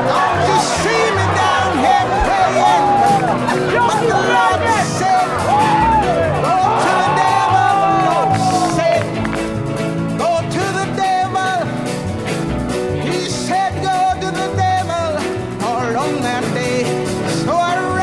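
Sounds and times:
song with vocals over a beat: 0.0s - 12.0s, 12.8s - 18.0s.

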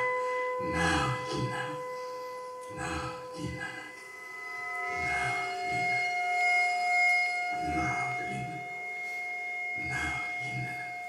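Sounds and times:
steady held tones: 0.0s - 11.0s
non-verbal vocal sounds: 0.6s - 1.9s, 2.6s - 4.0s, 9.8s - 10.8s.

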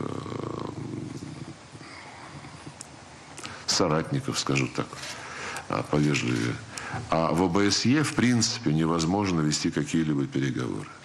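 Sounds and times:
low creaky murmur: 0.0s - 3.0s.

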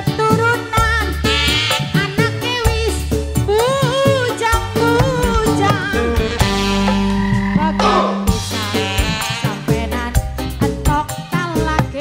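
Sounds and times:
electronic keyboard: 0.0s - 12.0s
drum hits: 4.6s - 9.3s.

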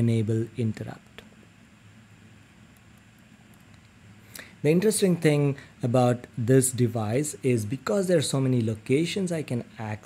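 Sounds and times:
light hiss: 0.0s - 9.9s
faint low hum: 0.0s - 10.0s.

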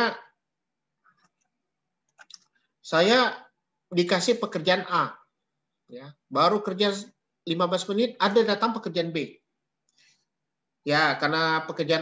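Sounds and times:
computer mouse clicks: 1.0s - 2.7s.

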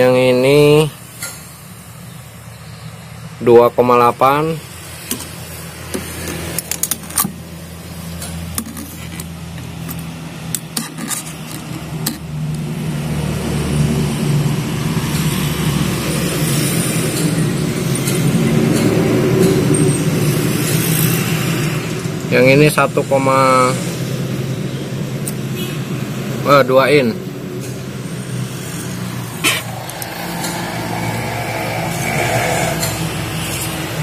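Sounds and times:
low motor hum: 27.2s - 34.0s.

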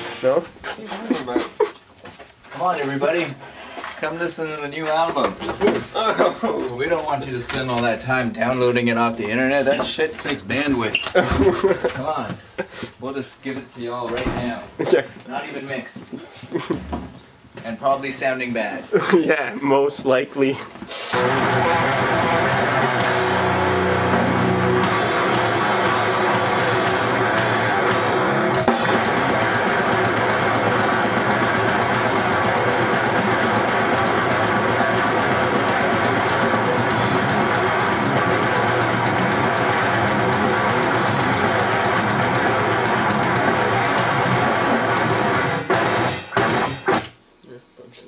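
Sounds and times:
grindcore music: 21.1s - 47.2s.

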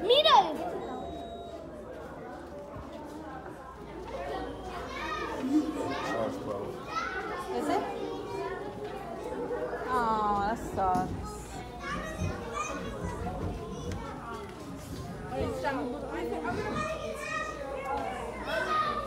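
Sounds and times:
children chattering and calling: 0.0s - 19.0s.

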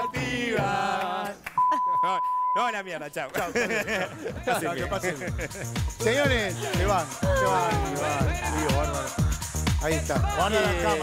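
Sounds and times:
voices singing held notes: 0.0s - 1.5s, 4.0s - 11.0s
censor bleep: 1.6s - 2.7s
person speaking: 7.2s - 9.0s.

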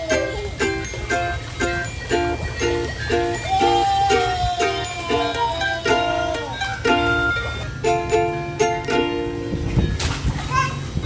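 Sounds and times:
ukulele music: 0.0s - 10.3s
child's high-pitched voice: 3.4s - 6.8s, 10.4s - 11.0s.

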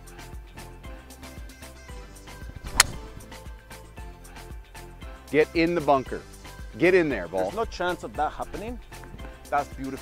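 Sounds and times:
background music with steady beat: 0.0s - 10.0s
golf club striking ball: 2.4s - 3.9s.

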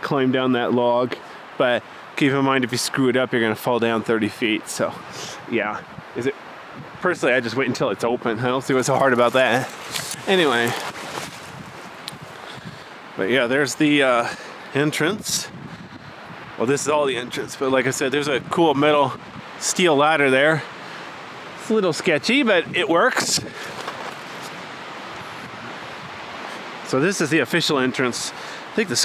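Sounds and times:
wind noise on microphone: 4.8s - 7.4s, 8.2s - 19.6s, 22.3s - 26.8s
rustles among branches: 8.7s - 12.9s, 23.2s - 26.8s.

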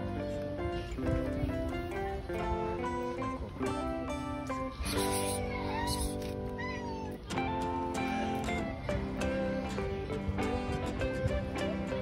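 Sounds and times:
guitar background music: 0.0s - 12.0s.

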